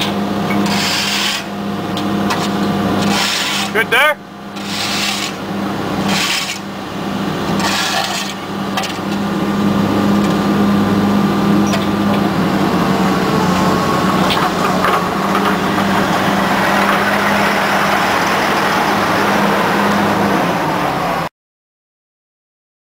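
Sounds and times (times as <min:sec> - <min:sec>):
excavator diesel engine running: 0:01.6 - 0:21.3.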